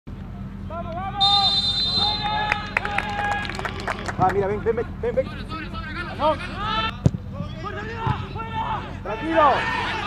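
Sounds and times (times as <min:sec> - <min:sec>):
players shouting: 0:00.7 - 0:10.0
referee's whistle blast: 0:01.2 - 0:02.4.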